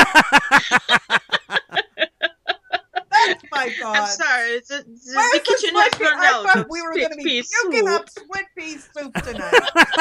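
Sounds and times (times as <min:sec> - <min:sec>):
person laughing: 0:00.0 - 0:04.2, 0:06.4 - 0:06.7, 0:09.2 - 0:10.0.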